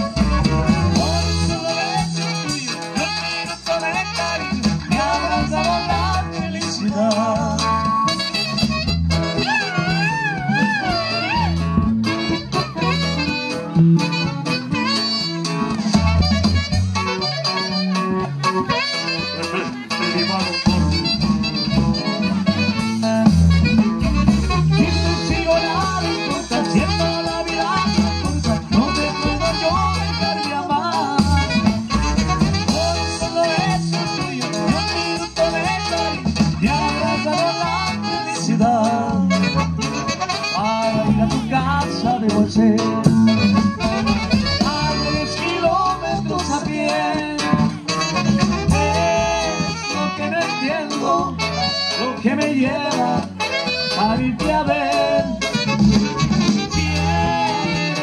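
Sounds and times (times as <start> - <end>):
steady bass beat: 0.0 - 51.6, 52.2 - 58.0
live band playing dance tune: 0.0 - 58.0.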